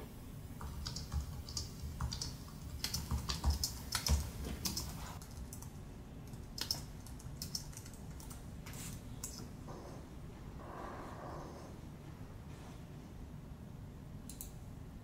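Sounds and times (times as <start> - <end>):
typing on computer keyboard: 0.6 - 8.4.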